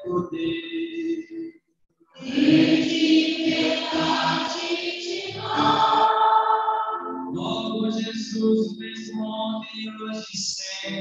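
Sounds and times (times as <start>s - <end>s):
church choir singing: 2.2s - 8.6s.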